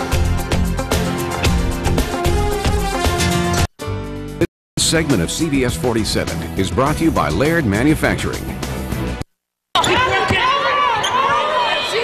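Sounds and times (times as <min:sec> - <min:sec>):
arena noise: 0:09.8 - 0:12.0.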